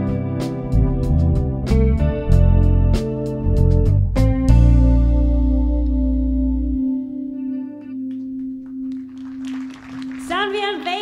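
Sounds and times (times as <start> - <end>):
hand claps: 8.0 - 11.0.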